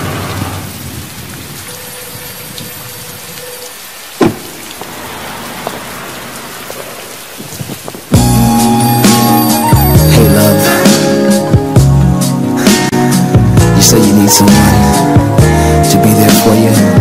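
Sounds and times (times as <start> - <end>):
rain falling: 0.0 - 17.0
thunder crack: 4.2 - 9.4
slow r and b music: 8.2 - 17.0.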